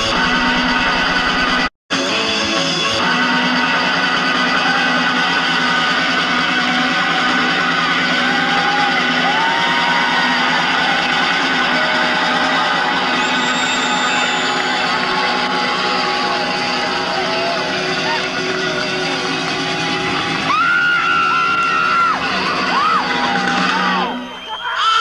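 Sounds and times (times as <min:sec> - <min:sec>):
crowd noise: 0:00.0 - 0:25.0
crowd shouts or whistles: 0:03.0 - 0:25.0.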